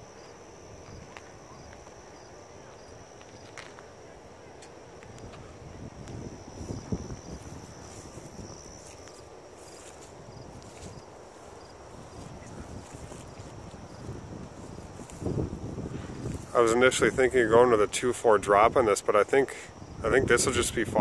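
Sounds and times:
wind buffeting microphone: 4.7 - 19.1, 19.7 - 21.0.

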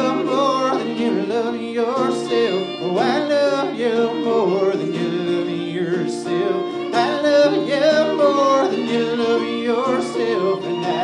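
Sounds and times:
acoustic guitar: 0.0 - 11.0
fiddle: 0.0 - 11.0
mandolin: 0.0 - 11.0
person singing: 0.0 - 11.0.

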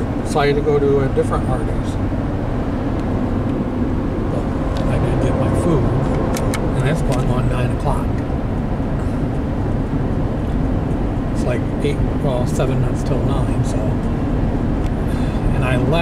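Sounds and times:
car road and engine rumble: 0.0 - 16.0.

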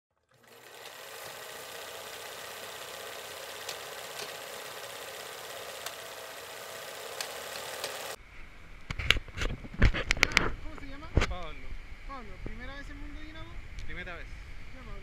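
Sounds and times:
film projector whirring: 0.2 - 8.2
crackling clicks: 7.2 - 8.2.

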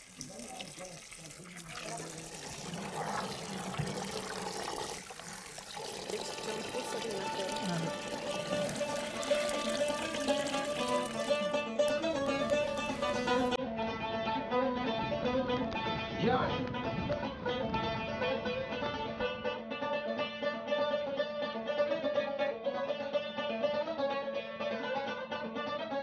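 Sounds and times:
tap water pouring onto beans: 0.0 - 13.6
music with plucked strings: 6.4 - 26.0.

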